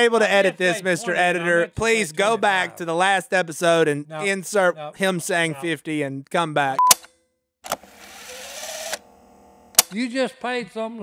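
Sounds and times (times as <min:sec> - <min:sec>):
tape rewind whir: 0:07.7 - 0:09.2
sharp click: 0:09.8 - 0:10.0.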